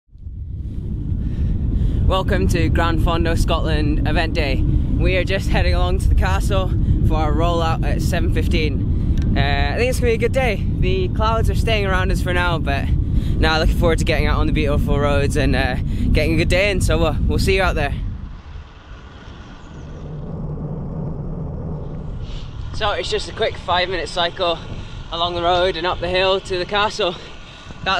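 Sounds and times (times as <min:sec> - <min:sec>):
low rumbling road noise: 0:00.1 - 0:27.9
steady low hum: 0:00.1 - 0:27.9
wind buffeting microphone: 0:00.1 - 0:27.9.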